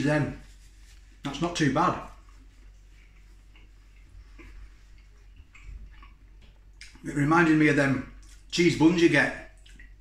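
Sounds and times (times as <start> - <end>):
low steady hum: 0.0 - 10.0
faint chewing clicks: 2.2 - 7.1.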